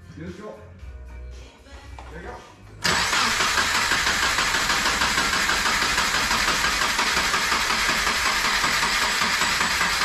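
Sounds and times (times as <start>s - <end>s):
background music: 0.0s - 4.5s
engine starting: 2.8s - 10.0s.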